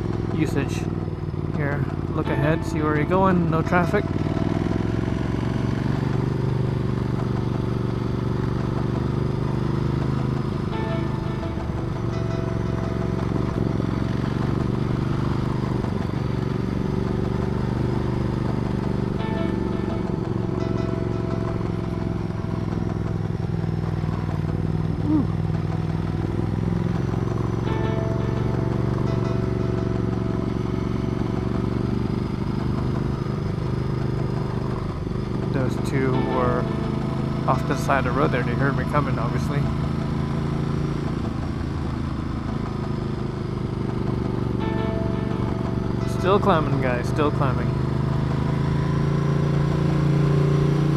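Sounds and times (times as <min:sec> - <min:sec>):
motorcycle engine running under load: 0:00.0 - 0:50.9
road noise: 0:00.0 - 0:50.9.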